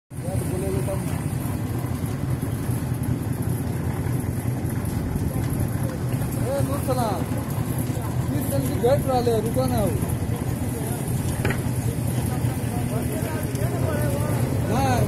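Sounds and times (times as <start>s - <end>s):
steady low rumble: 0.2s - 15.0s.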